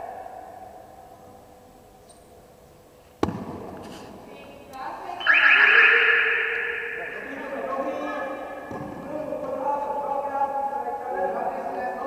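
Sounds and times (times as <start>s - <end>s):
sharp knock echoing in hall: 3.2s - 3.9s, 6.0s - 9.4s.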